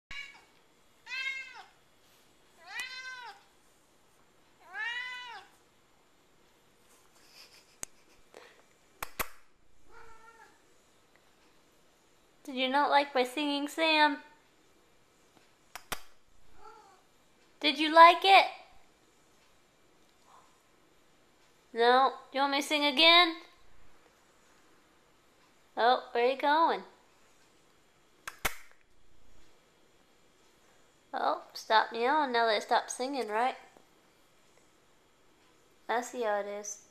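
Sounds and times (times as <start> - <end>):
cat meowing: 0.1 - 1.8, 2.6 - 3.5, 4.6 - 5.5, 9.9 - 10.6, 16.6 - 17.0
sharp clicks: 9.0 - 9.5, 15.7 - 16.2, 28.2 - 28.8.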